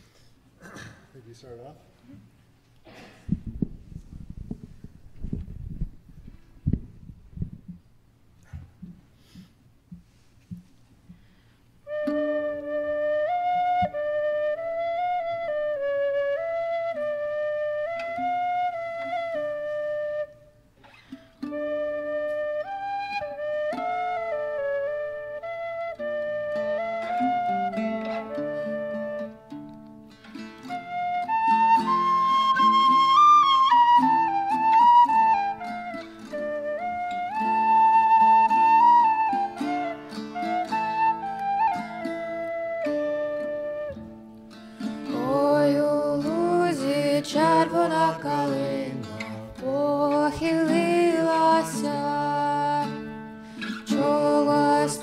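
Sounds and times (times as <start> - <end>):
acoustic folk song performance: 7.7 - 55.0.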